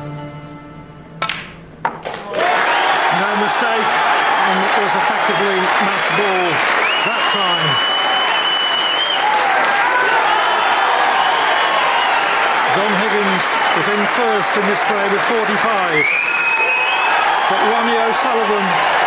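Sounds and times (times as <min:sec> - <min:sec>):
audience applauding: 0:02.1 - 0:19.0
spectators shouting: 0:02.2 - 0:19.0
long whistle: 0:06.8 - 0:09.4, 0:16.0 - 0:17.2.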